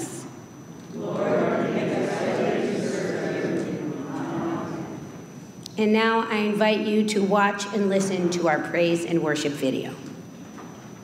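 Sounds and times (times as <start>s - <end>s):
congregation speaking in unison: 0.0s - 5.2s.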